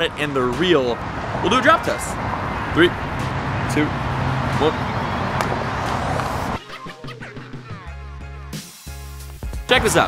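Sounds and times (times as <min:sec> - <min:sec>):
background music: 0:00.0 - 0:10.0
outdoor noise: 0:00.0 - 0:10.0.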